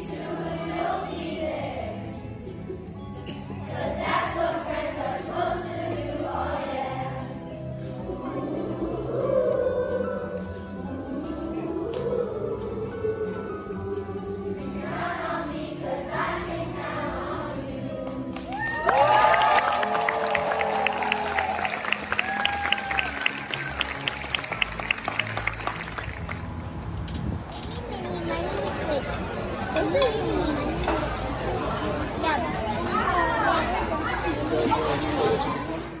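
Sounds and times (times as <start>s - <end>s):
children singing together: 0.0s - 2.2s, 3.6s - 7.4s, 8.0s - 18.0s
indistinct chatter of voices: 0.0s - 18.4s, 19.8s - 36.0s
hand clapping: 18.1s - 26.4s
loud cheering shouts: 18.5s - 25.4s.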